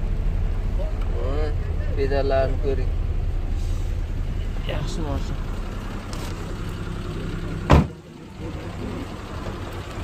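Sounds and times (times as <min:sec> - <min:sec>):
small car engine idling: 0:00.0 - 0:10.0.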